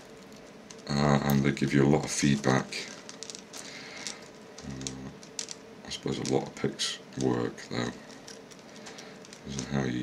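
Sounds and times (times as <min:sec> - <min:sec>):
low voice hum: 0:04.6 - 0:05.3.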